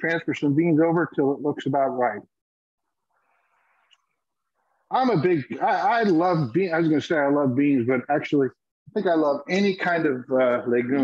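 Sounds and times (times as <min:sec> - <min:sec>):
man speaking: 0:00.0 - 0:02.4, 0:04.9 - 0:11.0.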